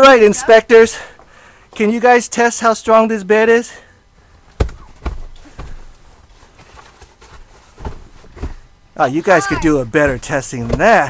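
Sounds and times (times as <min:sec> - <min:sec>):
thuds of children bouncing on mattress: 0:04.5 - 0:11.0.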